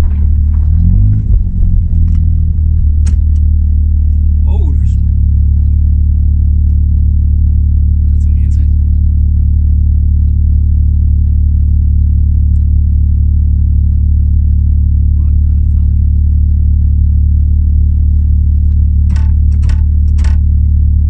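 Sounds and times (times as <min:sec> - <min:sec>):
car engine idling: 0:00.0 - 0:21.0.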